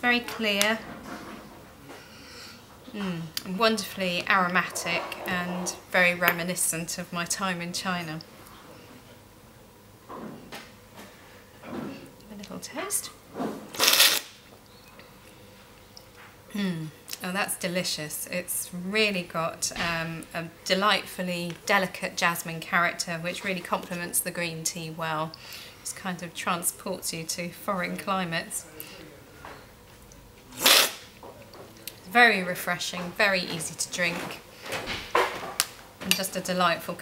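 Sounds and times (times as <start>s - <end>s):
loud airy slurp of tea: 13.8s - 14.2s, 30.6s - 31.0s.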